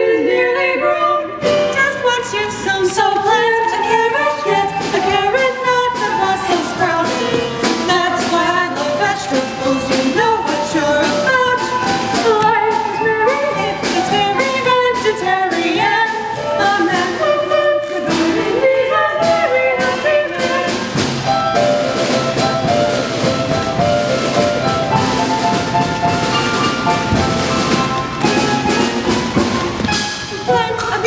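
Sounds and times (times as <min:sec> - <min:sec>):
two voices singing a duet: 0:00.0 - 0:21.1
instrumental accompaniment with beat: 0:01.4 - 0:31.0.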